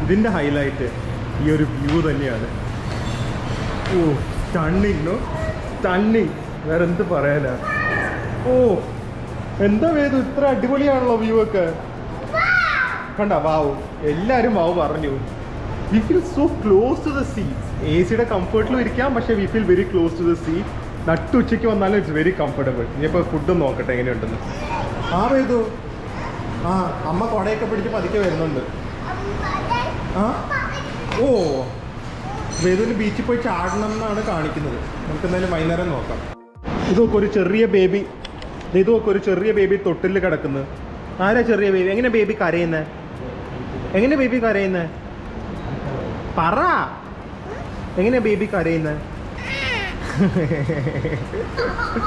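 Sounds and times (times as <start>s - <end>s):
child calling out: 7.6s - 8.4s, 12.3s - 13.2s, 24.4s - 25.2s, 49.4s - 50.1s
toddler babbling: 7.6s - 8.4s, 12.3s - 13.1s, 24.4s - 25.3s, 47.4s - 48.0s, 49.4s - 50.2s.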